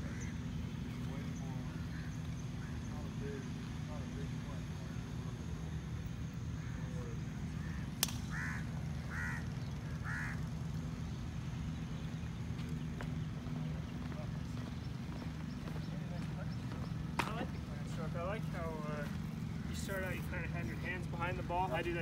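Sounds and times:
bird calling: 0.0s - 22.0s
steady low hum: 0.0s - 22.0s
sharp click: 8.0s - 8.3s.

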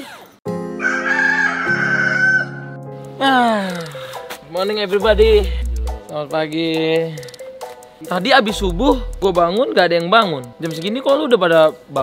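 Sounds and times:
rooster crowing: 0.8s - 2.7s
held music chords: 4.4s - 6.7s, 8.4s - 9.8s.

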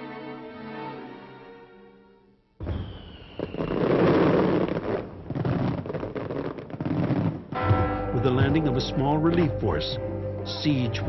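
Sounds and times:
firework whistle: 2.6s - 5.6s
fireworks crackling bangs: 2.6s - 8.7s.

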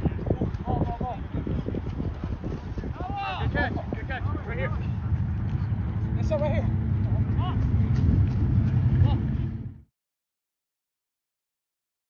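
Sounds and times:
low rumble: 0.0s - 9.9s.

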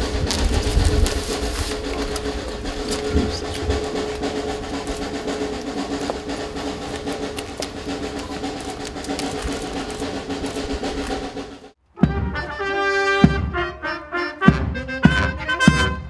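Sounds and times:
snare drum roll: 0.0s - 13.6s.

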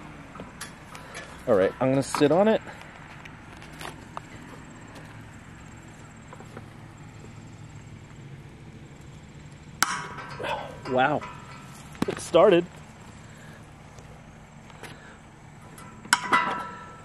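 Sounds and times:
metallic crack with ringing: 9.6s - 12.4s, 15.7s - 17.0s.

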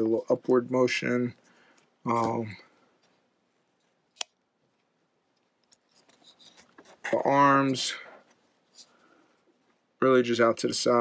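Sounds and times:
faint handling rustle: 0.2s - 11.0s.

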